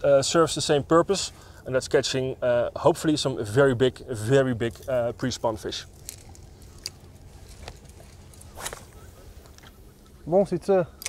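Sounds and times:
fishing rod swish: 8.5 - 9.0.

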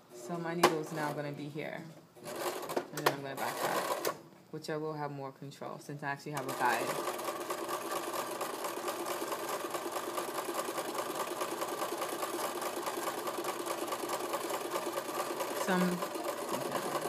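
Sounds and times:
sewing machine stitching: 2.2 - 4.2, 6.4 - 17.0.

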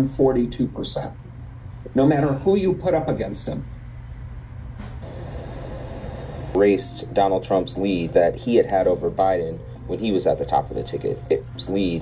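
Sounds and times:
low rumble with hiss: 0.0 - 12.0.

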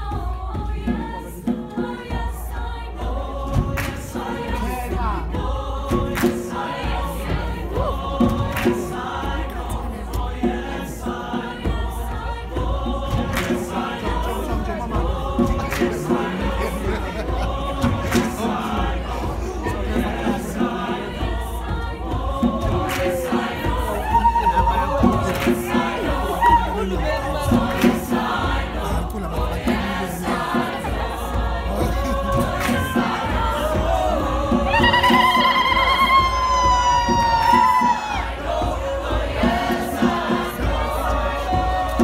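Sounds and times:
choir singing gospel song: 0.0 - 42.0
hand drum or clap strokes: 3.5 - 11.8, 13.0 - 17.0, 17.6 - 21.8, 22.4 - 38.4.

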